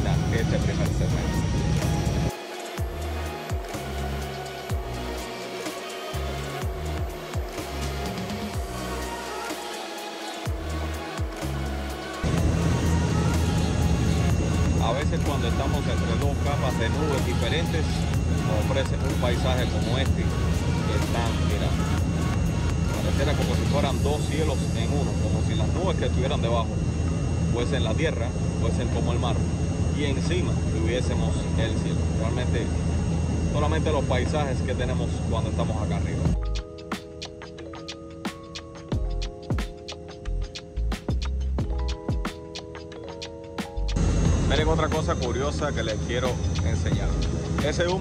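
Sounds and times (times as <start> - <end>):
airliner cabin engine roar: 0.0 - 3.0, 6.2 - 36.4, 44.0 - 48.0
faint steady tones: 41.6 - 48.0.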